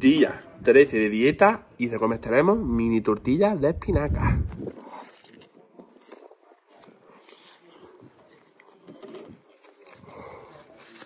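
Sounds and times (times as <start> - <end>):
man chewing food: 4.5 - 11.0.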